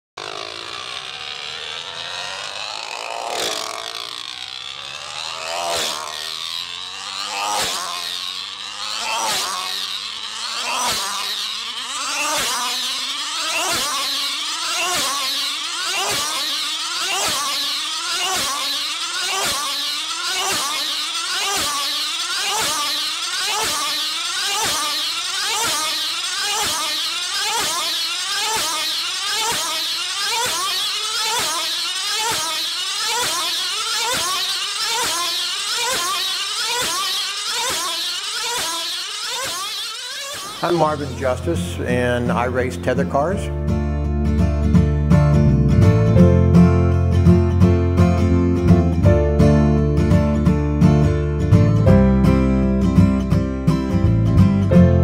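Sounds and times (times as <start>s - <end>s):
small two-stroke engine screaming: 0.2s - 55.0s.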